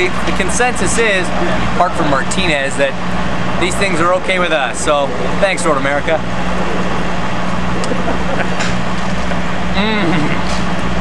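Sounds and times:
low engine hum: 0.0s - 11.0s
open-air noise: 0.0s - 11.0s.

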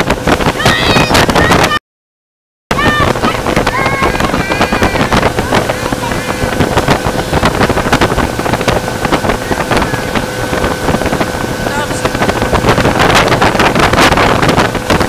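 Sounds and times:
rush of wake: 0.0s - 1.8s, 2.7s - 15.0s
wind buffeting microphone: 0.0s - 1.8s, 2.7s - 15.0s
motorboat engine whine: 2.7s - 15.0s.

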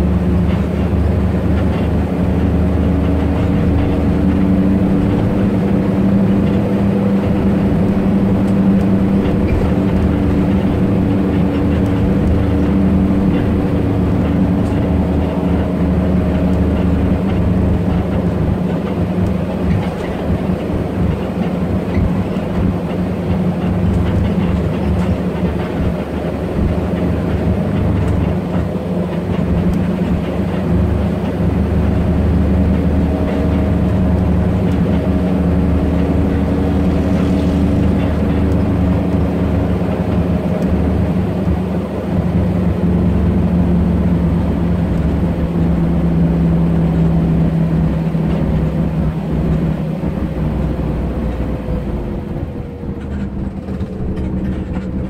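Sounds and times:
bus engine hum and road noise: 0.0s - 55.0s.

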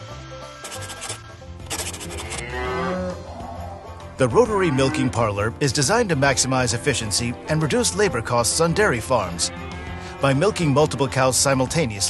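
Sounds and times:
quiet background music: 0.0s - 12.0s
cow mooing: 1.8s - 5.4s, 9.3s - 10.7s.

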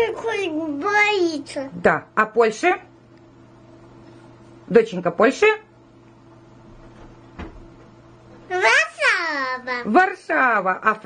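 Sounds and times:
soft knock: 6.8s - 8.0s.

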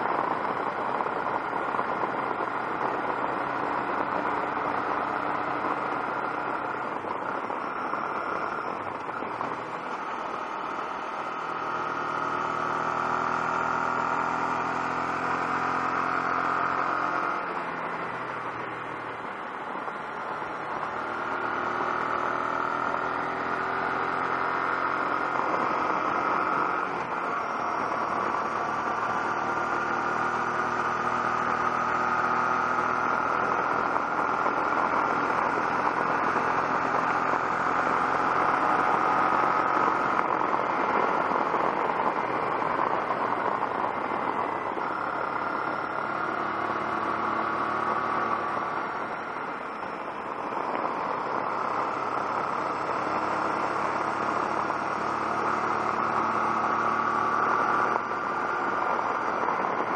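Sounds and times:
motorcycle engine running: 0.0s - 59.9s
wind and road noise: 0.0s - 59.9s.

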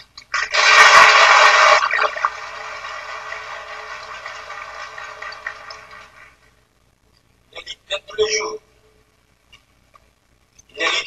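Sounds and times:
audience applauding: 0.3s - 6.5s.

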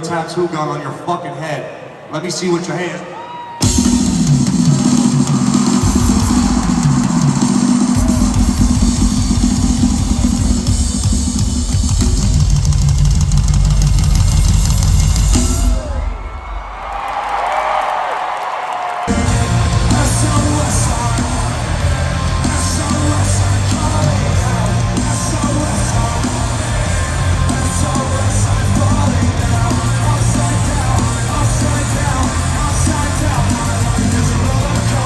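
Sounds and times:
crowd noise: 0.0s - 35.0s
rock band playing loud: 3.5s - 16.4s, 19.1s - 35.0s
loud rock drum kit: 3.6s - 17.3s, 19.0s - 35.0s.

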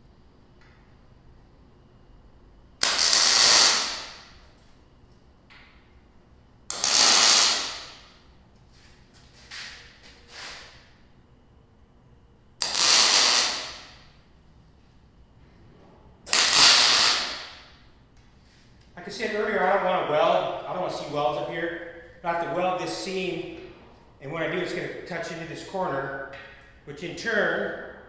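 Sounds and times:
mig welder bursts: 2.8s - 4.4s, 6.7s - 8.2s, 12.6s - 14.1s, 16.3s - 17.8s.

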